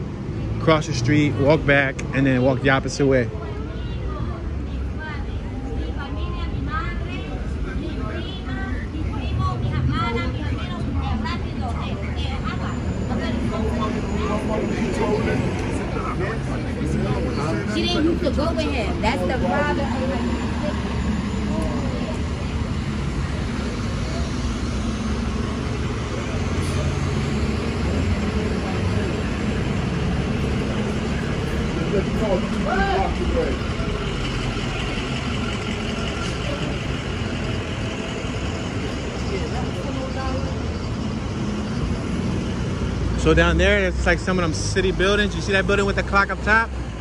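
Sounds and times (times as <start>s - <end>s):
low engine rumble of traffic: 0.0s - 47.0s
voices of passers-by: 0.0s - 47.0s.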